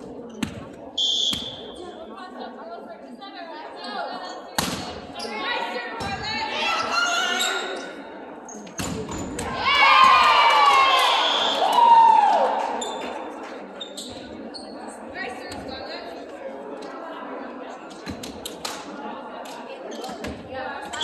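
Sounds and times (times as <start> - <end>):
players shouting and cheering: 9.4 - 13.0.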